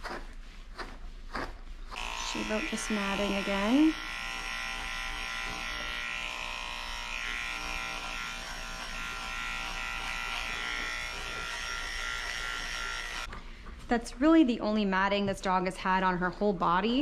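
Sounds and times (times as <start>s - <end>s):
electric pet clippers buzzing: 2.0s - 13.3s.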